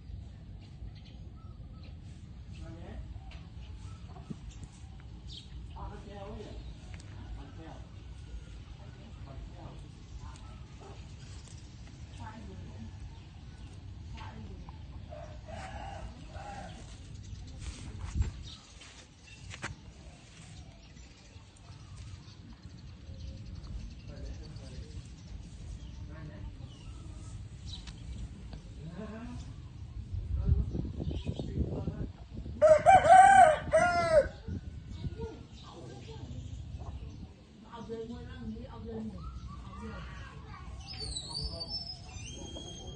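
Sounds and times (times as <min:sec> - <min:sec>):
low rumble on microphone: 0:00.0 - 0:42.9
rooster crowing: 0:32.6 - 0:34.4.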